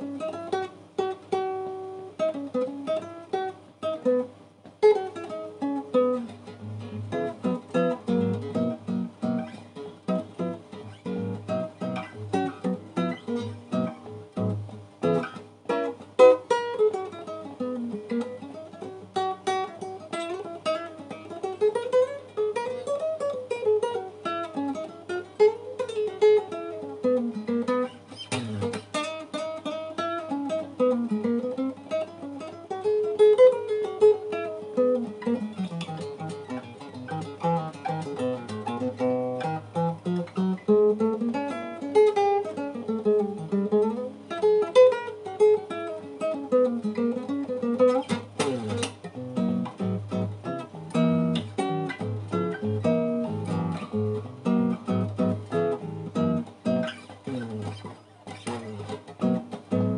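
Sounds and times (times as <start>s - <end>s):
nylon-string guitar playing: 0.0s - 59.9s.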